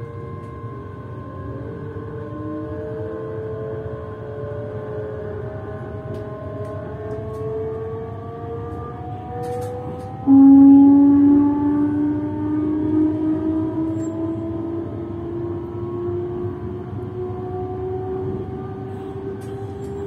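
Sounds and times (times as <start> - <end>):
low rising motor tone: 0.0 - 9.4, 10.0 - 20.0.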